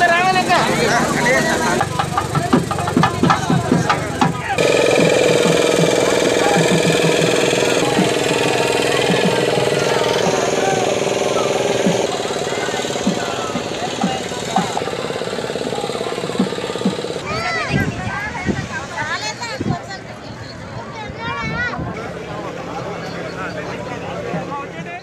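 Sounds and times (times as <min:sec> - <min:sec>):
small boat motor running: 0:00.0 - 0:17.5
crowd voices: 0:00.0 - 0:25.0.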